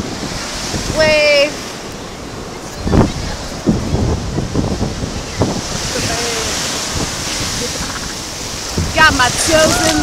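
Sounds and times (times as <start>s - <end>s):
ocean surf washing: 0.0s - 10.0s
wind buffeting microphone: 0.0s - 10.0s.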